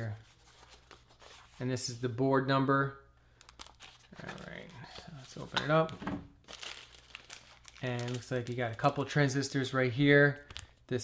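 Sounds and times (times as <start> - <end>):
plastic bag crinkling: 6.4 - 9.4.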